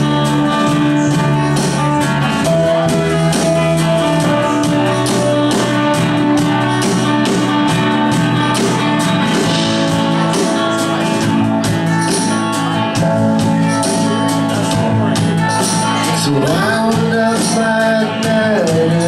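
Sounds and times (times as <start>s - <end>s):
guitar chords: 0.0s - 19.0s
steady percussion beat: 0.0s - 19.0s.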